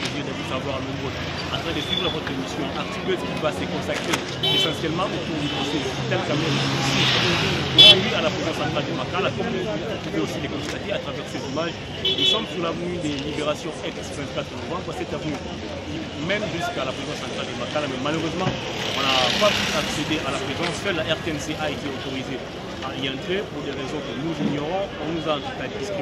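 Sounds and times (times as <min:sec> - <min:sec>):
voices talking: 0:00.0 - 0:26.0
motorcycle passing: 0:05.1 - 0:10.0, 0:17.2 - 0:22.8.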